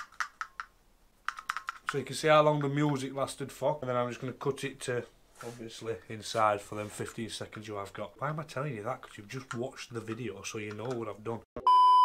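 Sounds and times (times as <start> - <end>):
plastic speaker clicks and taps: 0.0 - 0.7, 9.4 - 11.0.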